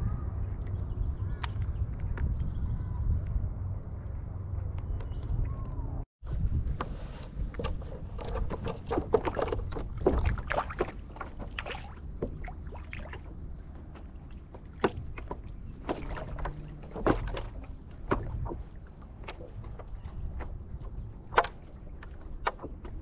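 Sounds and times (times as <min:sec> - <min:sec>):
water lapping against hull: 0:07.3 - 0:23.0
fishing tackle clicks and knocks: 0:07.5 - 0:11.6, 0:14.5 - 0:23.0.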